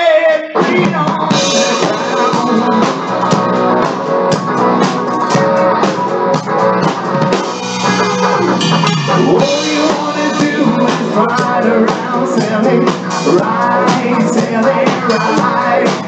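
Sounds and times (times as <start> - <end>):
drum kit beat: 0.0 - 16.0
bass guitar: 0.6 - 16.0
electric guitar: 0.6 - 16.0.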